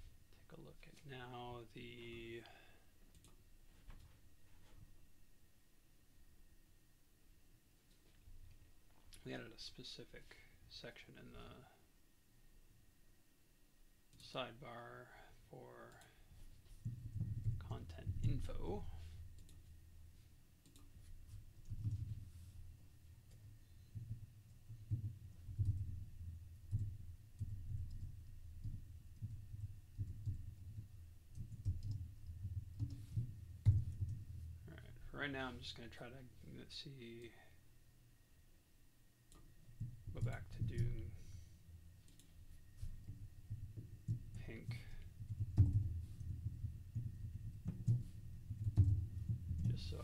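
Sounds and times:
low room hum: 0.0s - 50.0s
typing on computer keyboard: 26.7s - 34.2s.

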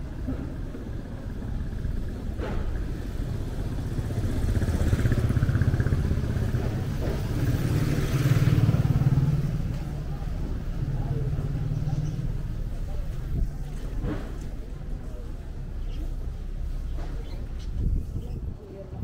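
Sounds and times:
motorcycle engines passing: 0.2s - 18.0s.

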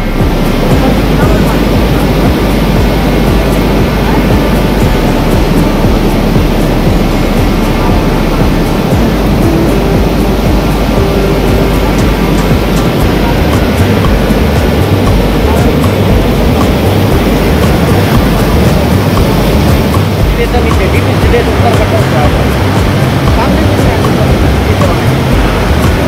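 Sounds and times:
torrential water rushing: 0.0s - 26.0s.

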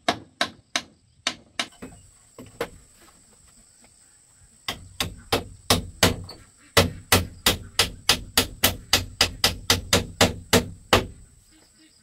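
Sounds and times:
hammer blows on bamboo: 4.6s - 11.4s.

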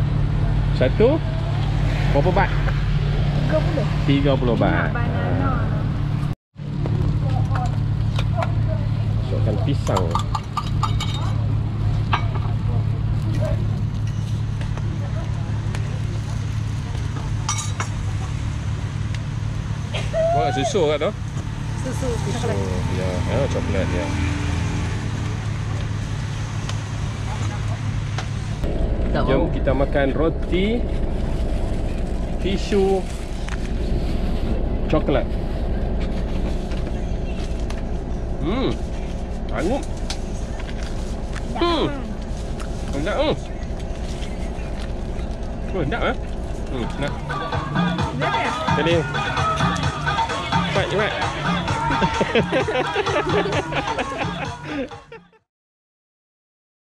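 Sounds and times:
van engine and road noise: 0.0s - 55.5s
faint voices: 42.9s - 55.0s.

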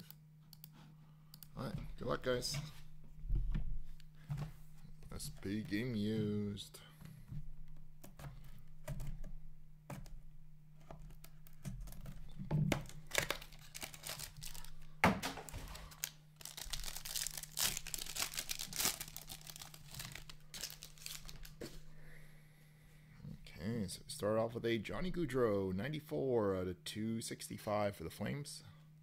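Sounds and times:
steady low hum: 0.0s - 29.0s
foil card pack crinkling and tearing: 12.8s - 21.6s.

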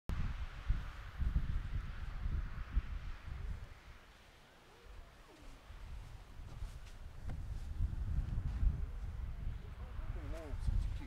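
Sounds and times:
wind buffeting microphone: 0.1s - 4.0s, 4.8s - 11.0s
steady hiss: 0.1s - 8.3s.

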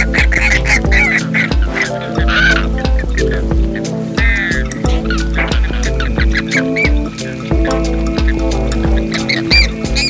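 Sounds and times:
background music with steady beat: 0.0s - 10.0s
flamingos calling: 0.0s - 10.0s.

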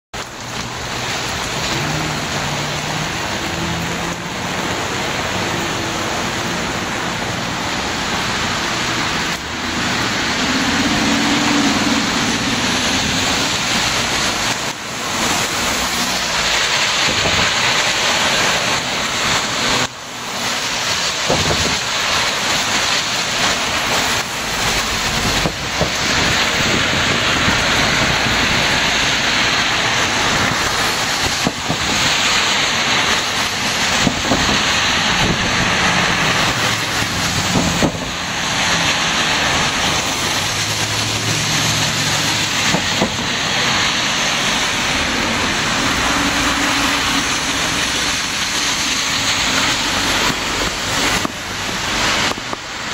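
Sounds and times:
heavy rain falling: 0.1s - 52.9s
truck passing: 0.2s - 52.9s
tyres hissing on wet road: 0.2s - 52.9s.

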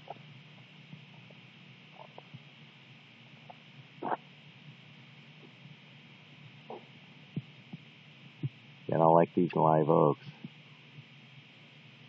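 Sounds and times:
faint steady hiss: 0.0s - 12.0s
man speaking: 8.9s - 10.3s.

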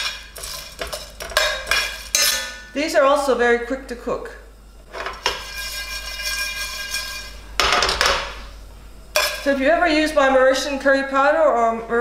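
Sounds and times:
cardamom pods rattling in pan: 0.0s - 2.2s
pan ringing: 0.0s - 2.8s.

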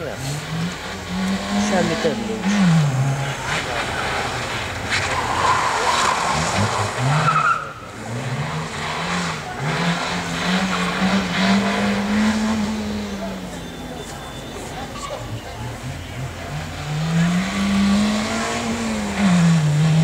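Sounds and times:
car engine revving: 0.0s - 20.0s
tyre squeals: 3.9s - 9.4s, 13.2s - 16.6s.

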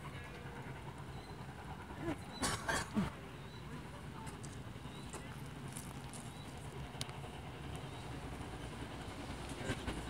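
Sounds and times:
distant train rumble: 0.0s - 10.0s.

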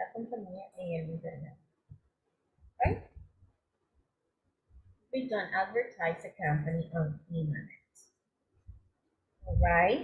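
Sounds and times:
person speaking over video call: 0.0s - 3.4s, 4.7s - 10.0s.

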